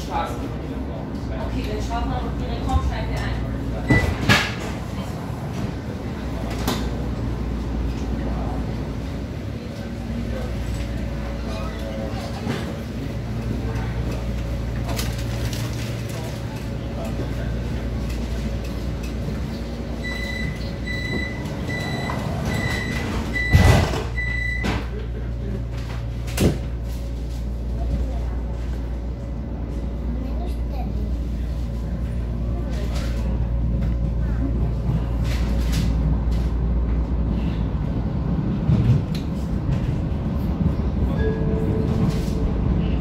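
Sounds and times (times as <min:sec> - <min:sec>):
train running noise: 0:00.0 - 0:43.0
high door warning beeps: 0:20.0 - 0:24.8.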